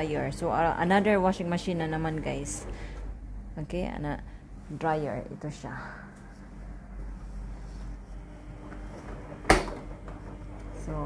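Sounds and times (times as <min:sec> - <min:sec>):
low steady hum: 0:00.0 - 0:11.0
dryer door clunking: 0:08.8 - 0:10.4.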